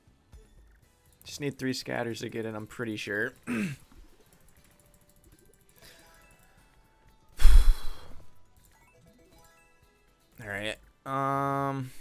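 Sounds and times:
faint slot game music: 0.0s - 12.0s.

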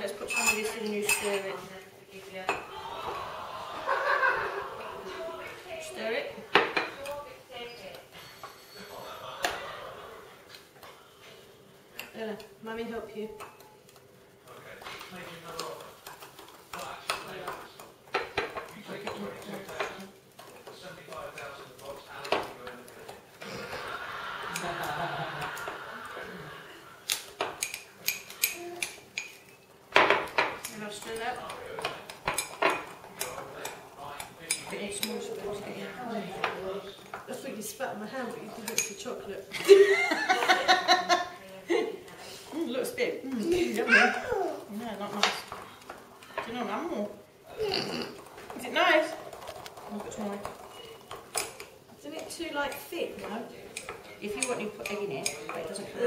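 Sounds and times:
spoons clinking against mugs: 0.2s - 1.6s, 27.1s - 35.3s, 38.5s - 39.1s, 52.6s - 55.8s.

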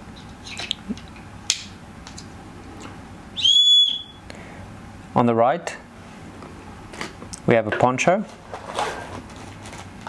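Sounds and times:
shrill whistle blast: 3.4s - 4.2s.

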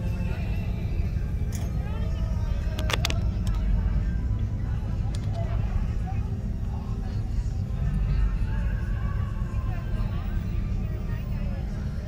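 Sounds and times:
idling cars rumble: 0.0s - 12.0s
indistinct crowd voices: 0.0s - 12.0s.

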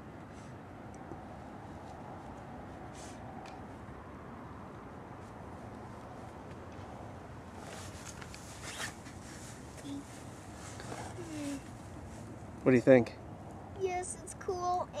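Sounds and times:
steady outdoor hiss: 0.0s - 15.0s
scratchy rustling: 7.5s - 12.3s.

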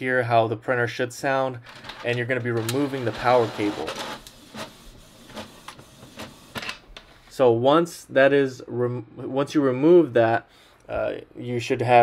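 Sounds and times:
printer mechanical whir: 2.6s - 6.6s.

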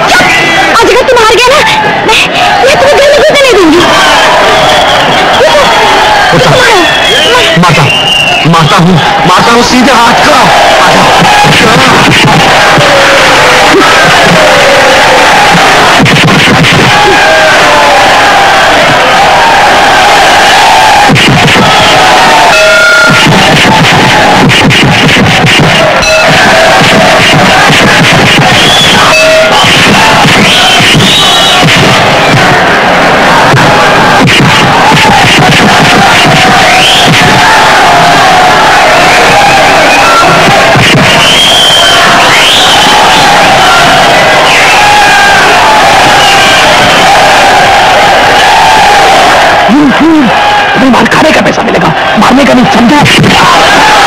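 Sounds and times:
crowd shouting and cheering: 0.0s - 54.0s.

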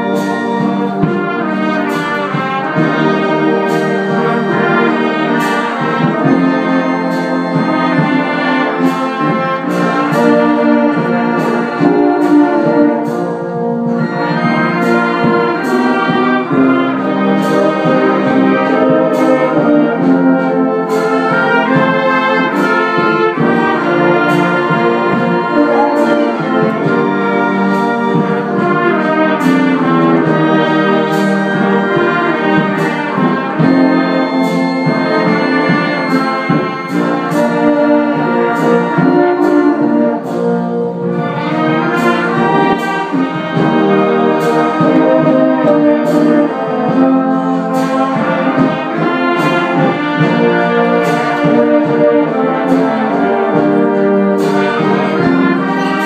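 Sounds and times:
brass band playing: 0.0s - 56.0s.

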